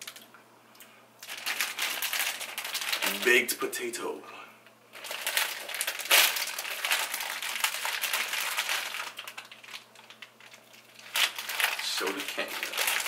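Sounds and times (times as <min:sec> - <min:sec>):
plastic wrapper crinkling: 0:00.0 - 0:00.3, 0:01.2 - 0:03.5, 0:04.9 - 0:13.0.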